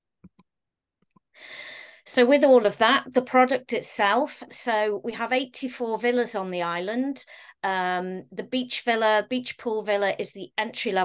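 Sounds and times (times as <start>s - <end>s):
in-breath: 1.3s - 2.1s, 7.3s - 7.6s.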